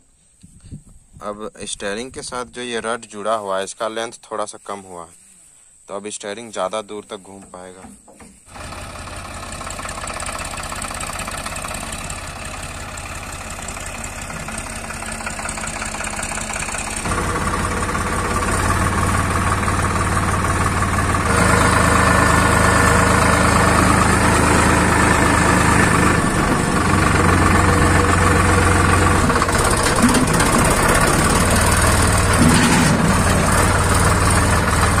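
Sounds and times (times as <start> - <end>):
tractor diesel engine running: 7.2 - 35.0.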